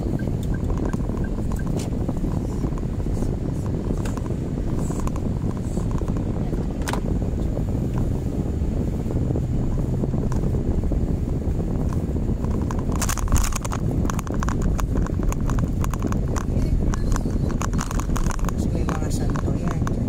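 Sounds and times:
rapid irregular clicks and rattles: 0.0s - 8.1s, 11.7s - 20.0s
car driving rumble inside cabin: 0.0s - 20.0s.

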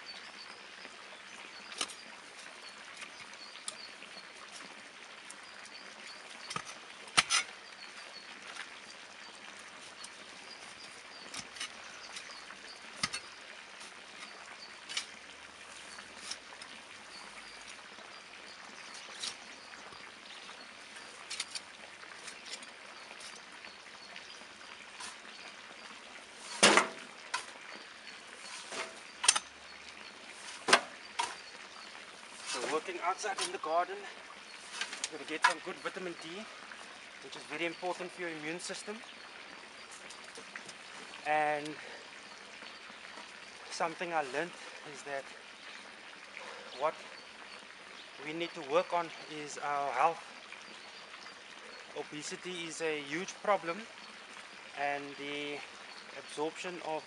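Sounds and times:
metal spade digging into compost: 6.4s - 7.6s, 11.2s - 15.2s, 21.0s - 23.4s, 26.4s - 27.6s, 28.4s - 29.6s, 30.3s - 31.5s, 32.3s - 33.8s, 34.6s - 36.0s
compost thudding into wheelbarrow: 26.5s - 27.4s.

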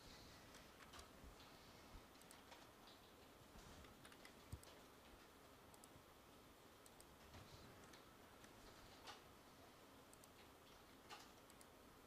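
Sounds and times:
faint computer mouse clicks: 5.7s - 6.0s, 6.8s - 9.2s, 10.1s - 11.8s.

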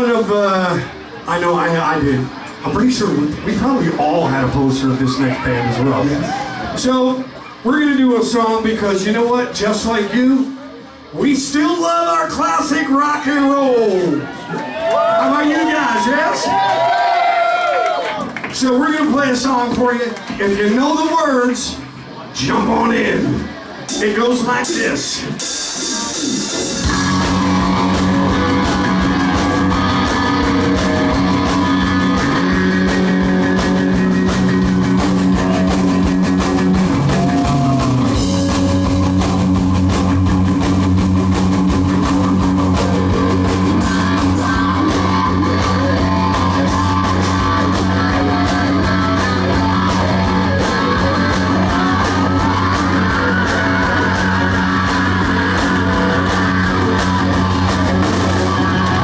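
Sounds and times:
rock band playing live: 18.2s - 59.0s
sustained low bass notes: 26.7s - 59.0s.

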